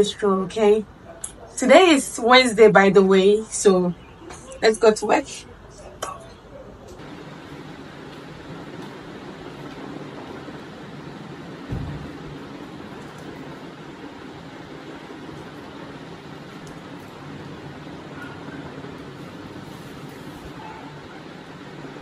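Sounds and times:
fan or air conditioner noise: 0.0s - 22.0s
dull thump: 11.7s - 12.1s.

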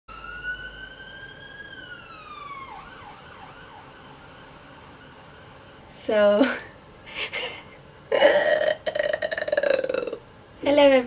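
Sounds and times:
emergency vehicle siren: 0.1s - 6.1s.

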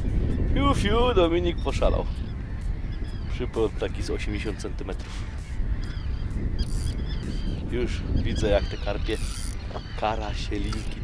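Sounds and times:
waterbirds honking: 0.2s - 11.0s.

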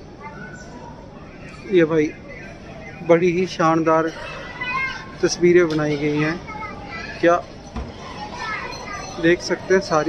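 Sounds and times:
murmur of distant voices: 0.0s - 10.0s.

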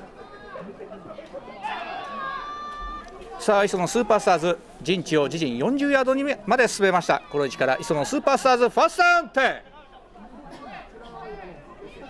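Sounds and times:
distant people talking and calling: 0.0s - 12.0s.

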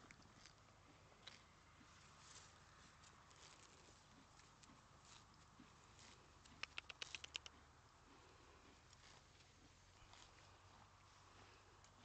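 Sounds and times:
quick sharp clicks: 6.4s - 7.5s.

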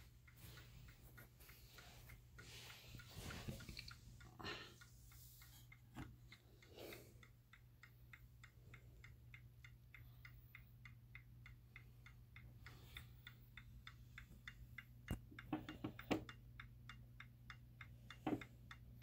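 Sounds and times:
mantel clock ticking: 0.0s - 19.0s.

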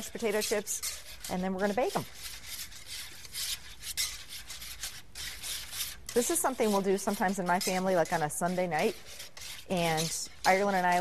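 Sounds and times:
whisk beating mixture in bowl: 0.0s - 11.0s.

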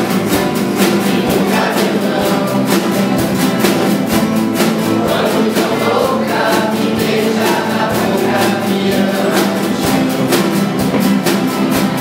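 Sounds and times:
acoustic guitars strumming: 0.0s - 12.0s
drum kit beat: 0.0s - 12.0s
group of voices singing: 0.0s - 12.0s.

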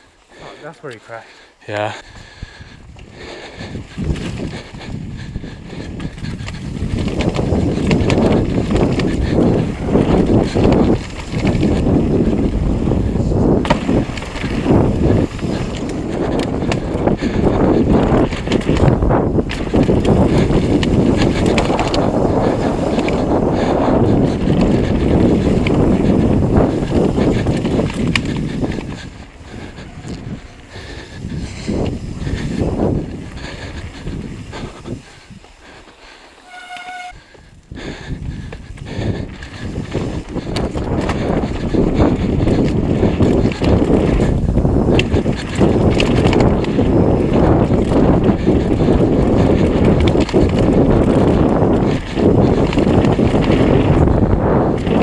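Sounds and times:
mountain bike rattling over rocks: 2.8s - 55.0s
short squeal: 36.4s - 37.2s.

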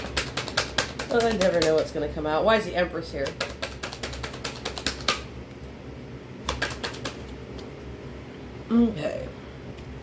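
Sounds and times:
fan humming: 0.0s - 10.0s.

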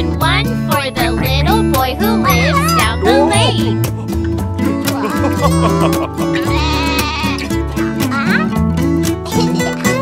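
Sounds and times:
upbeat children's song music: 0.0s - 10.0s
cartoon sheep bleating: 6.4s - 7.6s.

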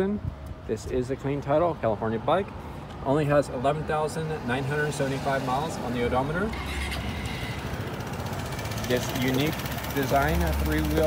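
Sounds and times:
scooter engine idling: 6.2s - 11.0s.

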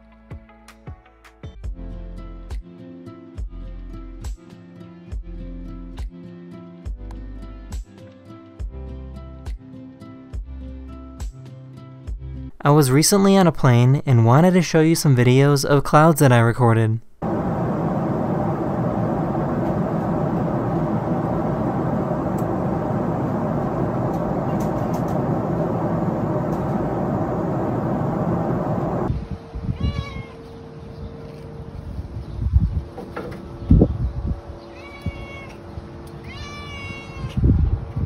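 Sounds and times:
airliner cabin drone: 17.2s - 29.6s
cat meowing: 29.7s - 30.5s, 34.7s - 37.4s.

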